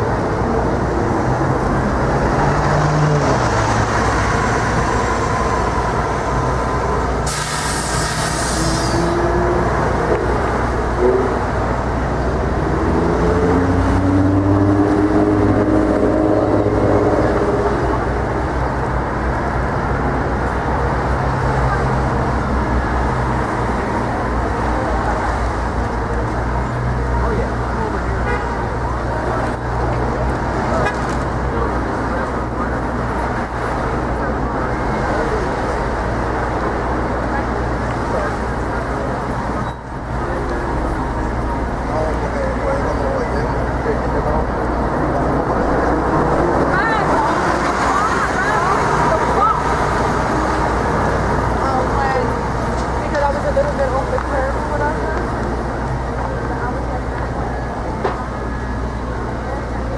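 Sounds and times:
cars and buses passing: 0:00.0 - 0:59.9
people's voices: 0:00.0 - 0:59.9.

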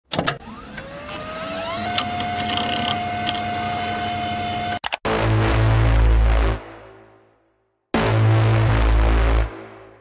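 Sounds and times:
motor-like spin-up whine: 0:00.4 - 0:04.8.

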